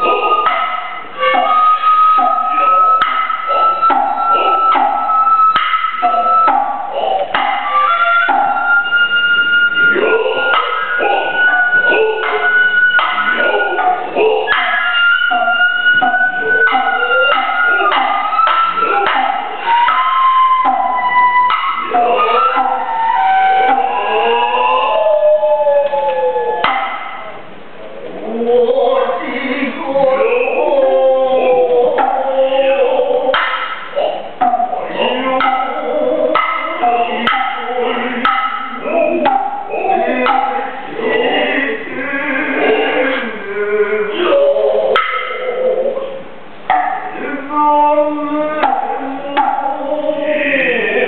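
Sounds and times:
bamboo flute high held notes: 0.0 - 27.5
drummers' drawn-out vocal calls: 0.0 - 51.0.

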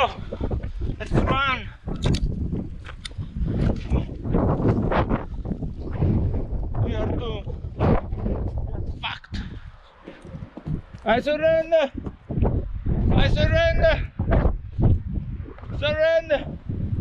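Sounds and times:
man's voice: 0.0 - 0.2, 1.0 - 1.7, 6.8 - 7.5, 11.0 - 12.0, 13.1 - 14.2, 15.7 - 16.6
wind buffeting microphone: 0.0 - 17.0.

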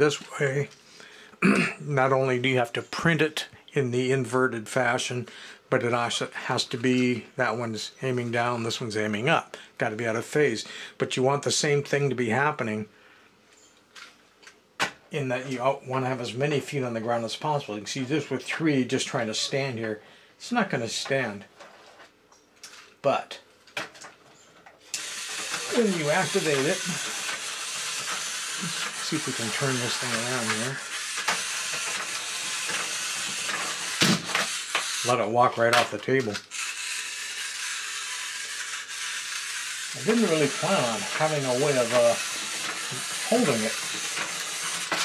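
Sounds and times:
robot clattering: 25.0 - 35.0, 35.7 - 45.0
robot motor whirring: 25.0 - 35.2, 36.4 - 45.0.

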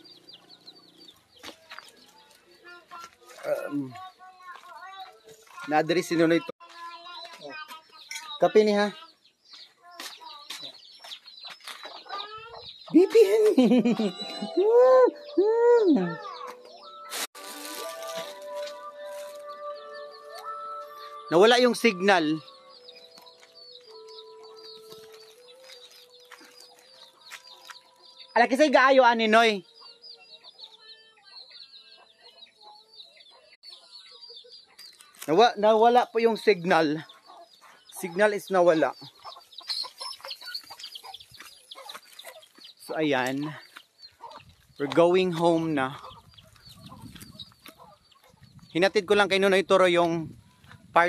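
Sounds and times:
chickens clucking: 0.0 - 15.4, 22.0 - 28.4, 29.2 - 48.8
high chirping: 3.7 - 51.0.

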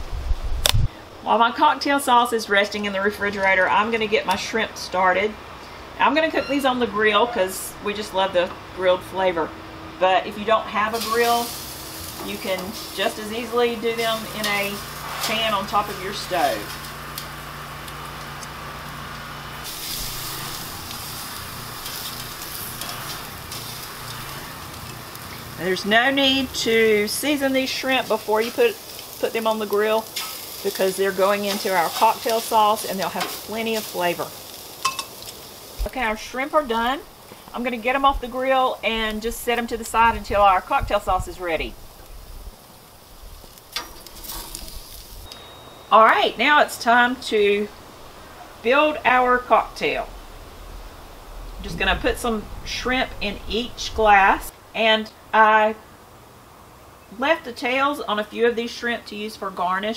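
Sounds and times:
shrimp sizzling on a grill: 7.5 - 54.5.

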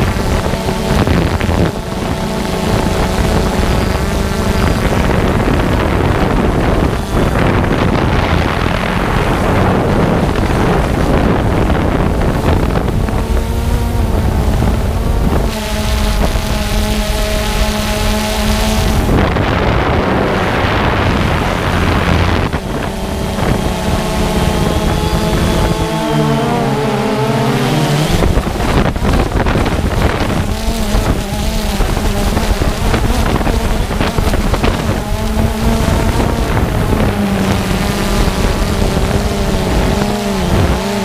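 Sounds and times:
drone propellers buzzing: 0.0 - 41.0
wind noise: 0.0 - 41.0.

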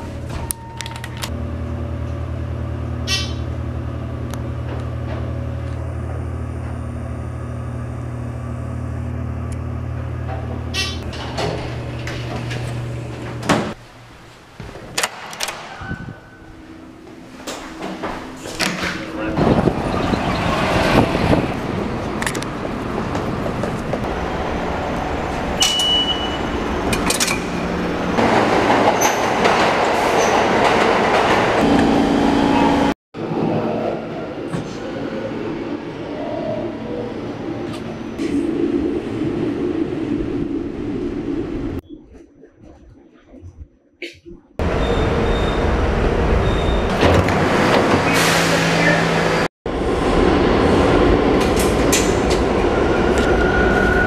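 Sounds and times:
elevator car humming: 0.0 - 41.8, 44.6 - 54.0
subway train rushing: 0.0 - 41.8, 44.6 - 54.0.

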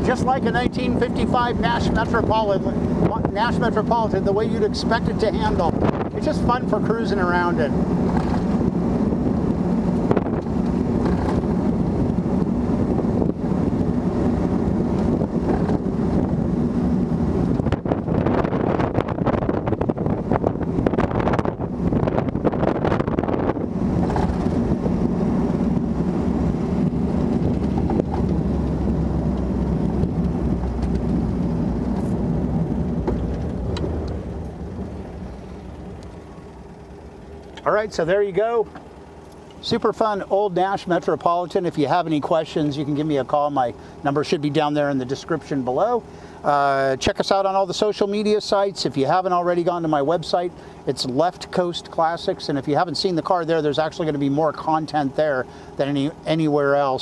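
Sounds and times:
wind noise: 0.0 - 37.9
car engine running: 0.0 - 57.0
road noise: 0.0 - 57.0.

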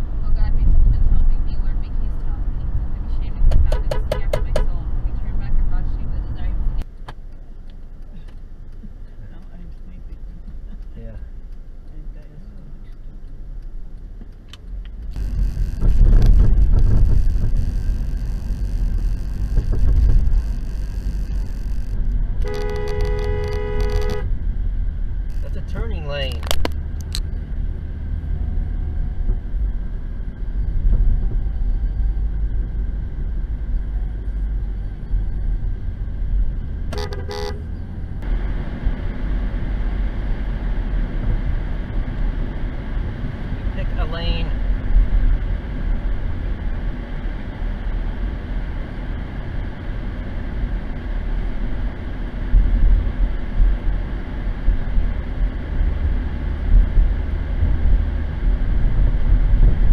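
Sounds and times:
road and engine rumble inside car: 0.0 - 59.9
car horn: 15.1 - 24.4, 36.9 - 37.7.

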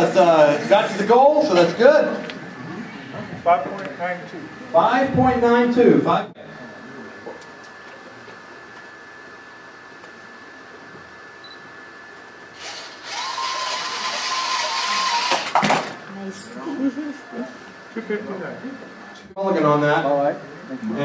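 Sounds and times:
robot drive motors whining: 12.6 - 15.6.

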